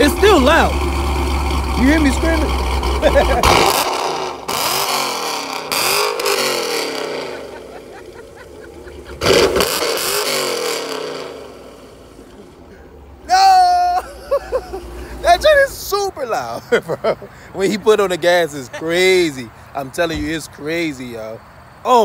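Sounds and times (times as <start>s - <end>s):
car engine revving: 0.0s - 16.1s
man laughing: 3.0s - 3.6s, 7.1s - 9.3s, 12.7s - 15.6s, 16.4s - 19.4s.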